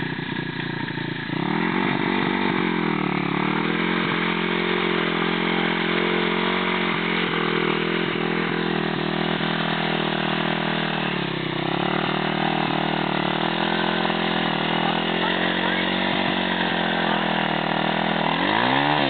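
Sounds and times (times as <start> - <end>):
motorbike engine revving: 0.0 - 19.0.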